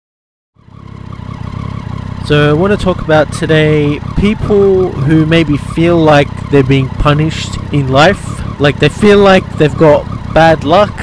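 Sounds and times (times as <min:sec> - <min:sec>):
motorcycle engine idling: 0:00.6 - 0:11.0.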